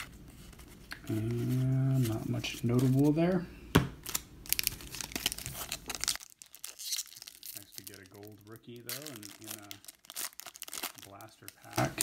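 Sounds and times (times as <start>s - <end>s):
foil pack tearing open: 4.0s - 12.0s
wrapper crinkling: 4.0s - 12.0s.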